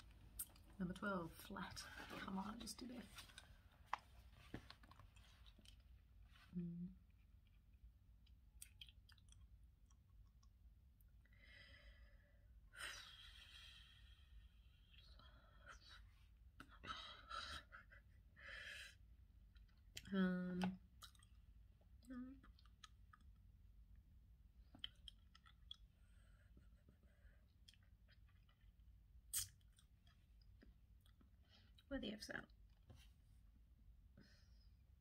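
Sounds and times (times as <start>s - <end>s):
person humming: 6.5s - 7.0s.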